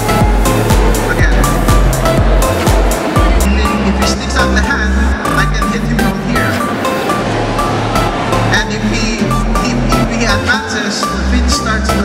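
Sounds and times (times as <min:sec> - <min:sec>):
deep kick drums: 0:00.0 - 0:03.5
synth tones: 0:00.0 - 0:11.5
electronic dance music: 0:00.0 - 0:12.0.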